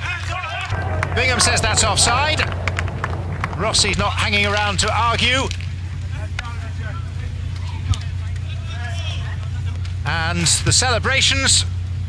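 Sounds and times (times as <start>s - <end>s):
stadium ambience hum: 0.0s - 12.0s
distant players calling out: 0.7s - 5.3s.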